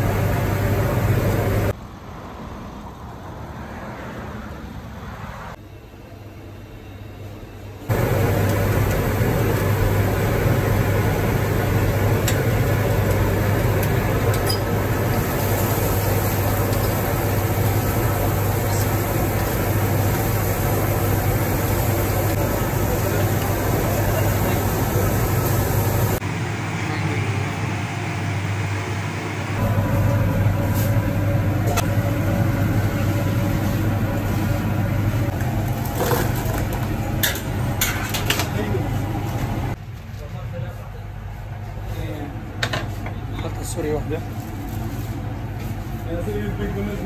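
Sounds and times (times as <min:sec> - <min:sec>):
kitchen roar with low hum: 0:00.0 - 0:47.0
hot oil sizzling: 0:07.9 - 0:26.2.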